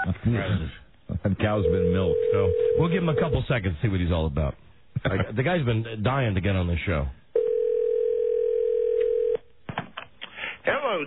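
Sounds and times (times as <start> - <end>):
telephone ringback tone: 1.6 - 3.4, 7.4 - 9.4.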